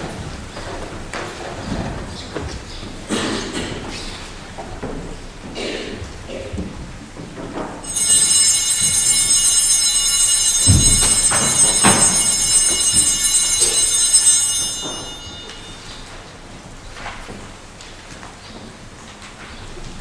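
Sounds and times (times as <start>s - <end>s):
small bells ringing: 7.8s - 16.3s.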